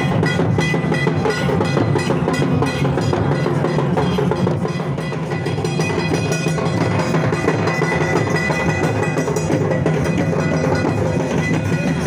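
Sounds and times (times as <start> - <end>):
barrel drums playing dance rhythm: 0.0 - 12.0.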